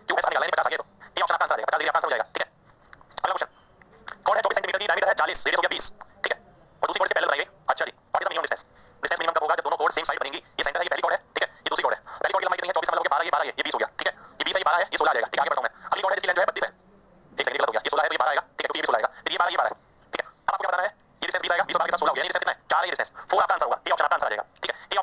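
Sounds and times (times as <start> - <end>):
man talking: 0.0 - 2.5, 3.2 - 16.8, 17.4 - 25.0.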